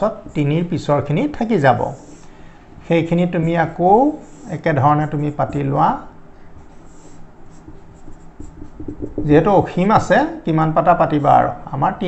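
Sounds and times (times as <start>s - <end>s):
marker writing on whiteboard: 0.0s - 2.3s, 2.9s - 9.5s.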